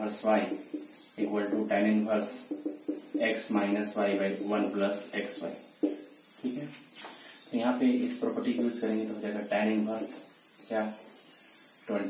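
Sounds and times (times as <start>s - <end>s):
man talking: 0.0s - 0.6s, 1.2s - 2.5s, 3.2s - 5.6s, 7.5s - 11.0s
crickets trilling: 0.0s - 12.0s.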